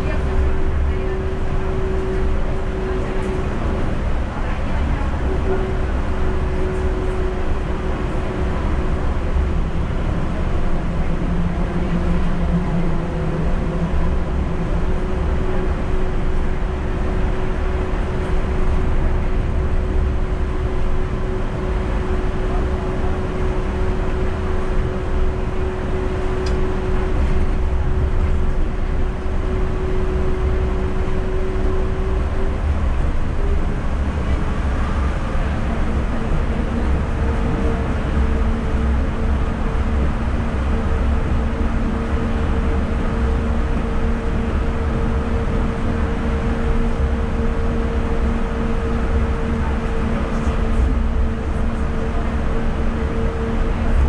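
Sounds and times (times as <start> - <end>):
train running with humming rumble: 0.0 - 54.0.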